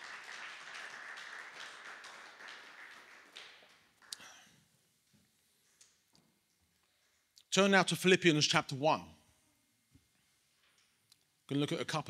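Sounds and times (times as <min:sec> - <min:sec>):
faint applause: 0:00.0 - 0:04.4.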